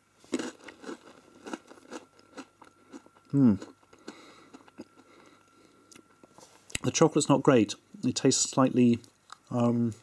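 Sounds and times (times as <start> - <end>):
chewing crunchy breadstick: 0.3 - 6.8.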